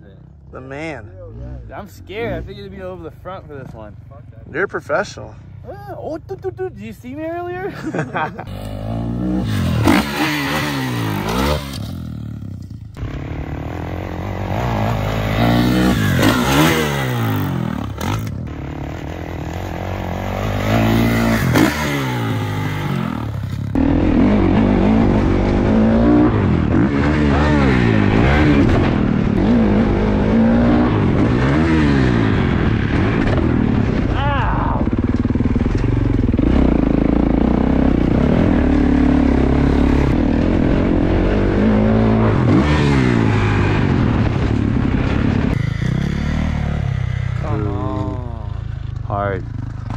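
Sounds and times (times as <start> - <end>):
dirt bike engines revving: 0.0 - 49.9
dirt bike engine running hard: 7.8 - 49.9.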